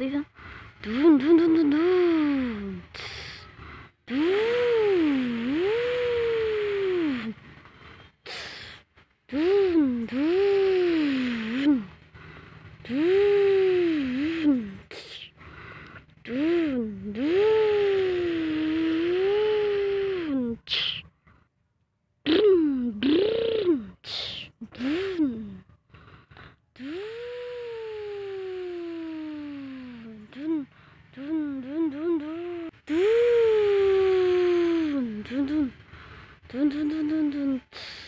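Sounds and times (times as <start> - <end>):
child imitating truck engine: 0.0 - 7.4, 8.3 - 21.1, 22.2 - 25.7, 26.8 - 38.0.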